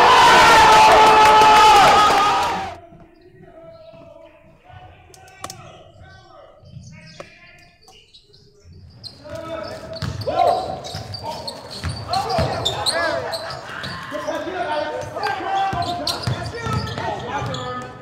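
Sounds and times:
people's voices and shouts: 0:09.3 - 0:17.4
basketball bouncing on gym floor: 0:10.0 - 0:11.2, 0:15.0 - 0:18.0.

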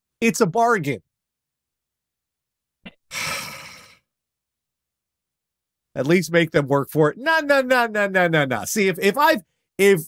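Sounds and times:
person sighing: 0:03.1 - 0:04.0.

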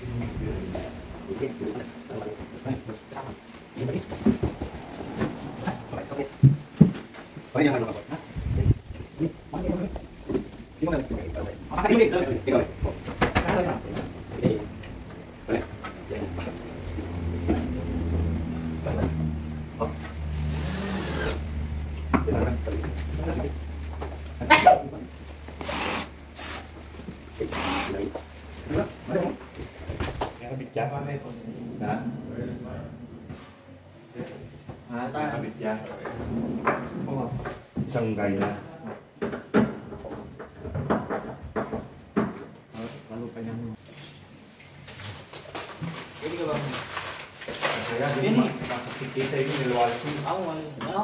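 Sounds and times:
men talking: 0:00.1 - 0:06.5, 0:07.4 - 0:20.0, 0:22.1 - 0:23.6, 0:34.2 - 0:38.7, 0:47.6 - 0:50.4
low engine hum: 0:13.8 - 0:24.4.

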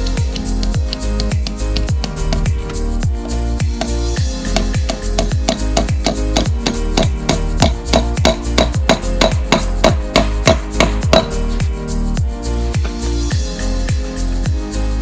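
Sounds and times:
upbeat electronic music: 0:00.0 - 0:15.0
hammer tapping into wood: 0:00.3 - 0:03.9, 0:04.5 - 0:11.4.

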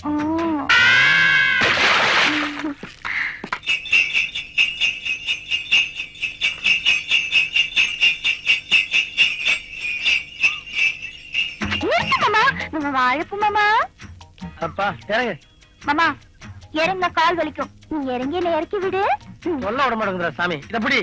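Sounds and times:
jingle bells ringing: 0:03.6 - 0:13.3.

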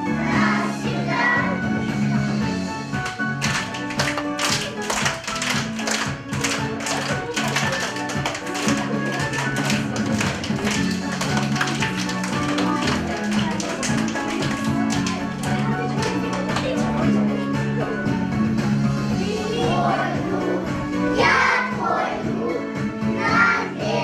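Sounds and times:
children's dance music: 0:00.0 - 0:24.0
children clapping hands: 0:03.0 - 0:17.0.

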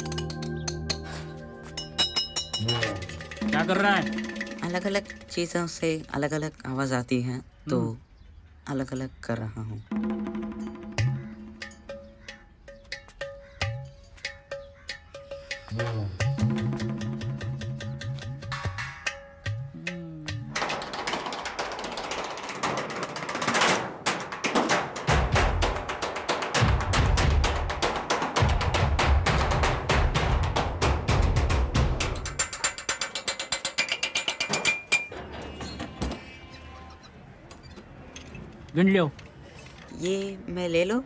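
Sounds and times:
drumming on scrap metal: 0:01.8 - 0:06.3, 0:10.1 - 0:35.2
low beat: 0:15.7 - 0:20.6.

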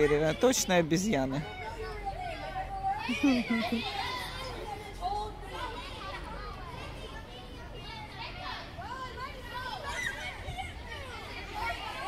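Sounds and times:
children chattering and shouting: 0:00.0 - 0:12.0.

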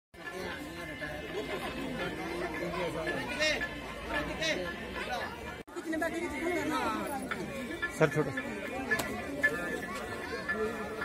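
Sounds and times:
people chattering: 0:00.2 - 0:11.0.

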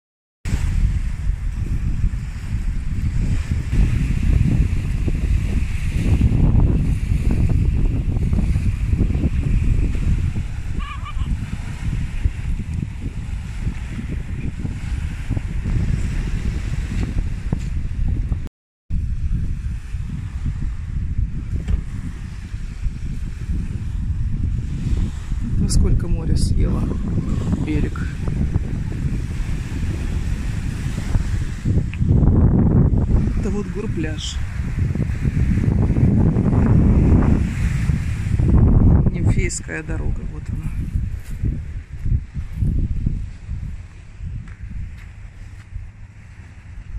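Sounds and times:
wind buffeting microphone: 0:00.4 - 0:46.9
waves washing on beach: 0:00.5 - 0:18.1, 0:19.0 - 0:32.2, 0:32.9 - 0:46.9.

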